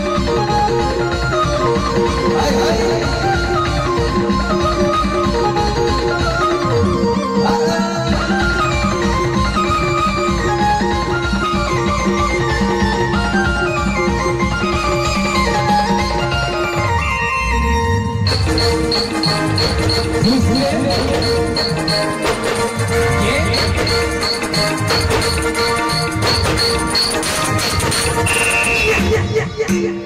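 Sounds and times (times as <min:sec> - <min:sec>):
procession band playing: 0:18.3 - 0:29.2.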